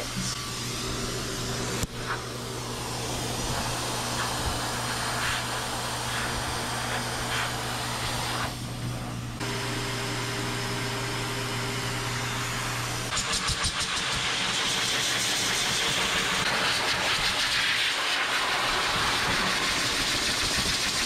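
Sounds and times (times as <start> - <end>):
pet dryer blowing air: 0.0 - 21.0.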